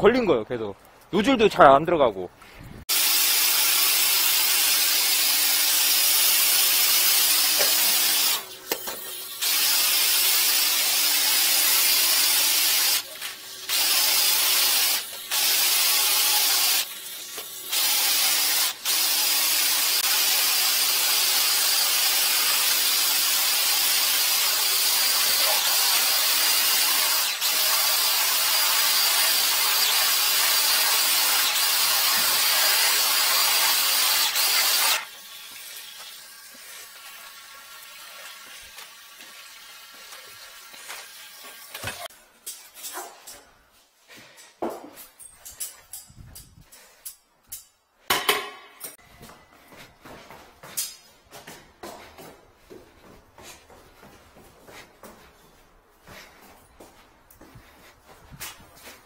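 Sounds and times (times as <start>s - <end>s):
high-pressure water jet hissing: 2.9s - 8.5s, 9.4s - 16.9s, 17.6s - 37.2s.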